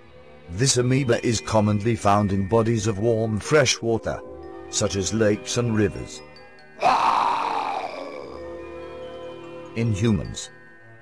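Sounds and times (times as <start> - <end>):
background music: 0.0 - 11.0
growling sound effect: 6.8 - 8.5.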